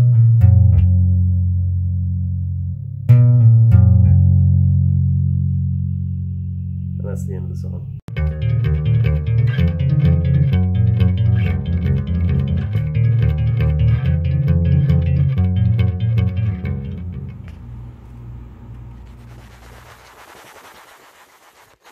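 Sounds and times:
electric bass guitar played fast: 0:00.0 - 0:18.0
faint hiss: 0:17.3 - 0:21.9.

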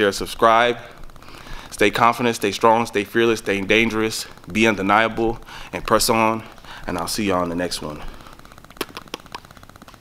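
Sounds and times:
sharp clicks: 0:08.2 - 0:10.0.

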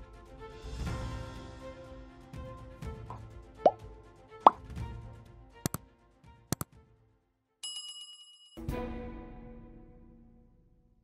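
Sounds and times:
background music: 0:00.0 - 0:07.3, 0:08.6 - 0:11.0.

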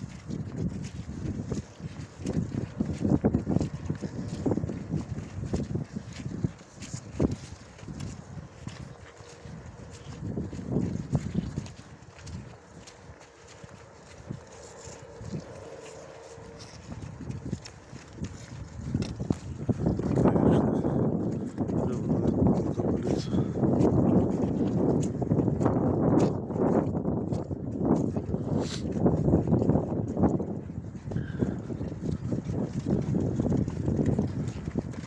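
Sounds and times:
footsteps squelching in wet mud: 0:00.0 - 0:35.0
horse hooves on muddy ground: 0:00.0 - 0:35.0
wind rumbling on microphone: 0:00.0 - 0:35.0.

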